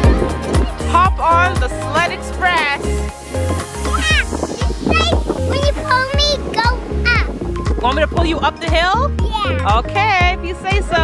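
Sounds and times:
background music with bass beat: 0:00.0 - 0:11.0
high falling vocal sound: 0:03.7 - 0:06.1.

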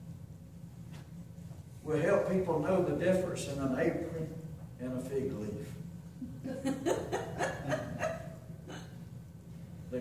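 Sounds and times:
bursts of laughter: 0:06.4 - 0:08.9.

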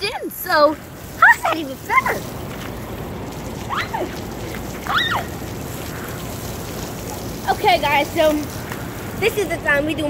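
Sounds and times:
sprinkler spraying onto pavement: 0:00.0 - 0:10.0.

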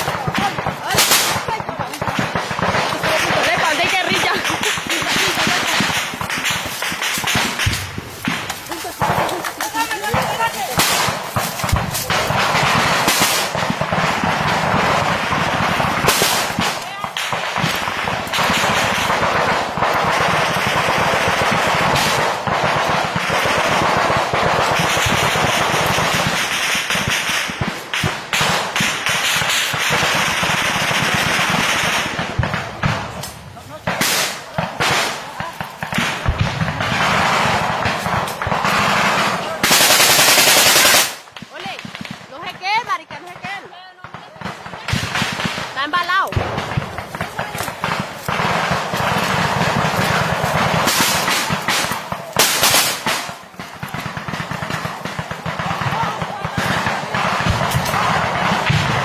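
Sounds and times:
voices shouting: 0:00.0 - 0:27.1, 0:28.0 - 0:59.0
automatic gunfire: 0:00.0 - 0:59.0.

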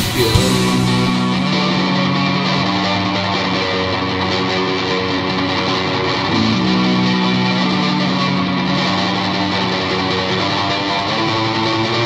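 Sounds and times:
electric guitar chords ringing: 0:00.0 - 0:12.0.

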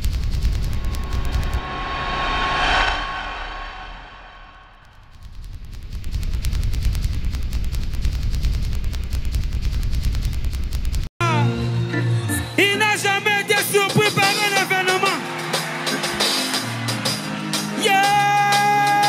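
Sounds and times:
rapid even pulsing: 0:00.0 - 0:05.1
deep bass rumble: 0:00.0 - 0:10.1
whoosh: 0:00.3 - 0:05.3.

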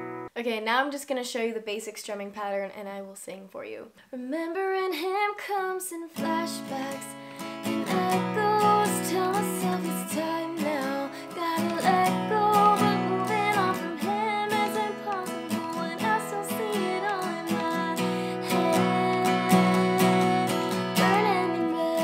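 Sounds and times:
acoustic guitar strumming: 0:00.0 - 0:00.3, 0:06.2 - 0:22.0
woman singing: 0:04.1 - 0:22.0.

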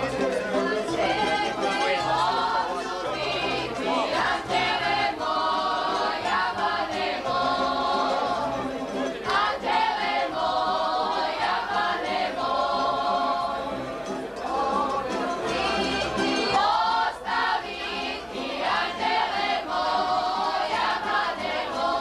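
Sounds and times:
string band playing: 0:00.0 - 0:22.0
women singing together: 0:00.6 - 0:22.0.

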